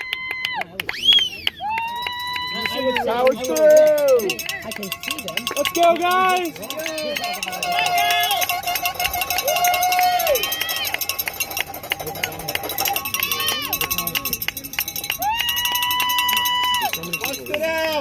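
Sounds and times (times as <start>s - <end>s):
spectators yelling and cheering: 0.0s - 18.0s
cowbell shaken rapidly: 2.5s - 18.0s
long drawn-out shouts: 6.0s - 11.1s, 15.2s - 17.0s.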